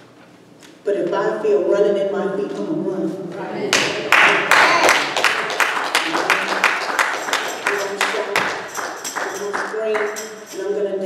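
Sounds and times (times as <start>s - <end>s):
rhythmic hand clapping: 3.7s - 10.8s.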